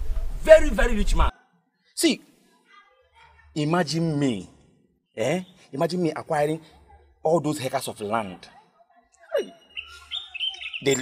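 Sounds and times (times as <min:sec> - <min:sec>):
birds chirping: 0:09.1 - 0:11.0.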